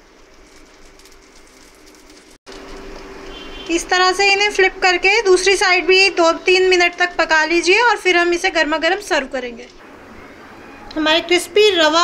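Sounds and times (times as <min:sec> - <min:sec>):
oil sizzling in a pan: 0:00.0 - 0:03.7.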